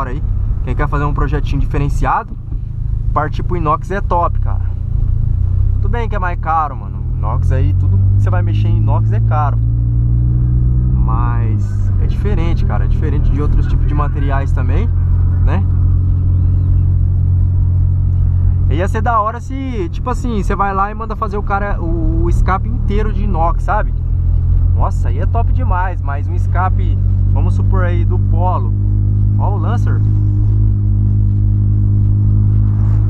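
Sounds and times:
car engine and exhaust drone: 0.0 - 33.0.

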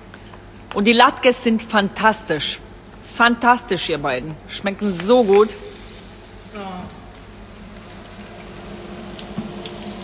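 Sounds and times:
food sizzling in oil: 4.8 - 6.6, 7.2 - 10.0.

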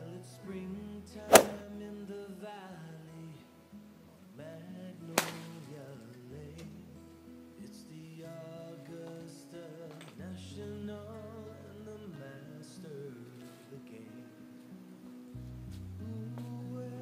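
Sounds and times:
acoustic guitar music: 0.0 - 17.0
golf clubs striking balls: 1.3 - 1.6, 5.2 - 5.5.

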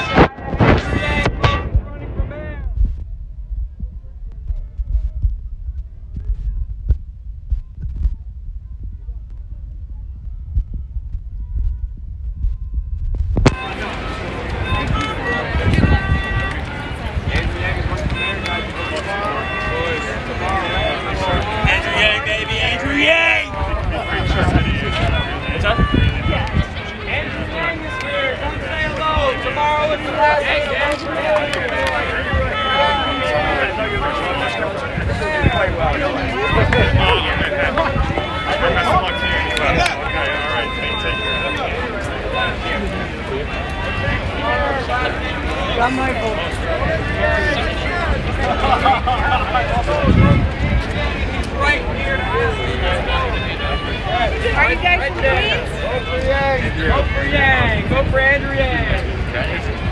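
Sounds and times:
people talking: 0.0 - 12.8, 13.4 - 59.9
steady low rumble: 0.0 - 18.2
low rumble on microphone: 0.0 - 22.9, 41.4 - 59.9.

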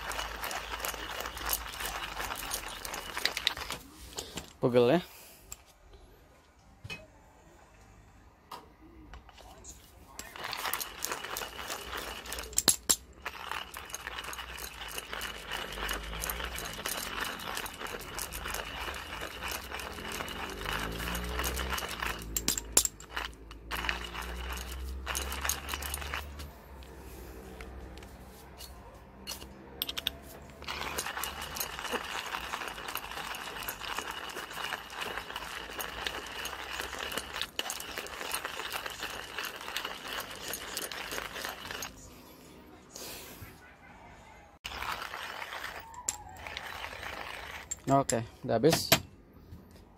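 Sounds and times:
hand coffee grinder crunching beans: 0.0 - 3.9, 10.2 - 26.9, 29.3 - 42.1, 44.6 - 48.2.

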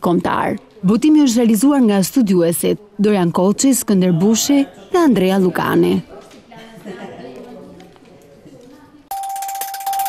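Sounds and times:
faint background voices: 0.5 - 9.1
bell-like tone with shimmer: 9.1 - 10.0.

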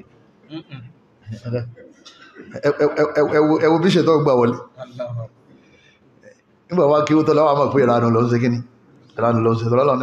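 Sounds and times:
man speaking into microphone: 1.2 - 5.4, 6.3 - 10.0.

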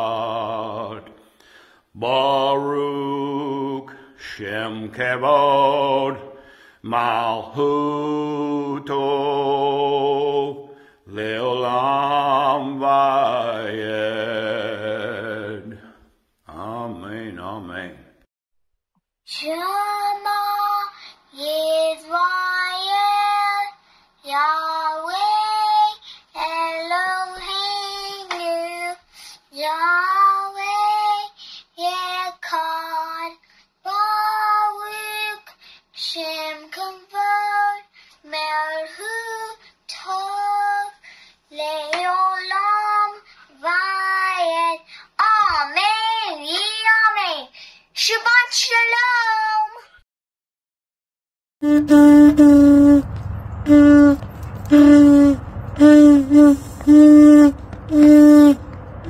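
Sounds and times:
child singing unaccompanied: 19.3 - 49.9, 53.6 - 59.0.

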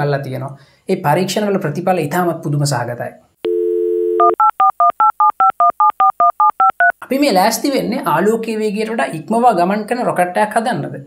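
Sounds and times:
telephone keypad dialing beeps: 3.5 - 6.9.

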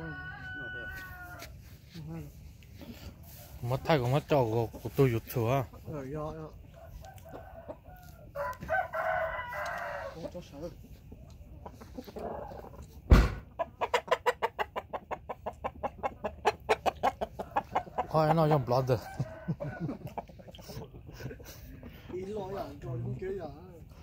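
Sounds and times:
rooster crowing: 0.0 - 1.5, 6.7 - 10.4, 17.5 - 20.1
sharp knock: 13.1 - 13.5.

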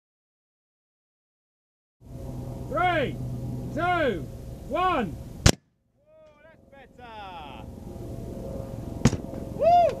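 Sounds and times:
sharp thud on ground: 5.4 - 5.7, 9.0 - 9.4
short whoop: 9.5 - 10.0.

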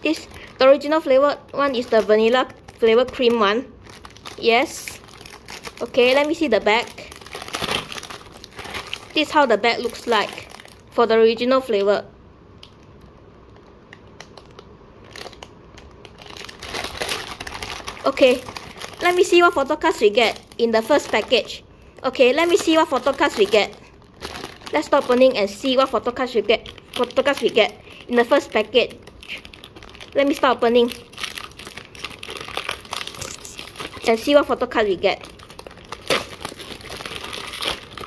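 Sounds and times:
plastic packet crinkling: 0.0 - 11.0, 12.6 - 38.0.

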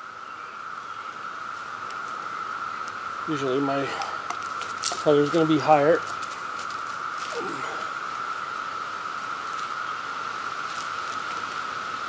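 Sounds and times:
steady high-pitched hum: 0.0 - 12.0
faint rustling: 4.1 - 8.6.

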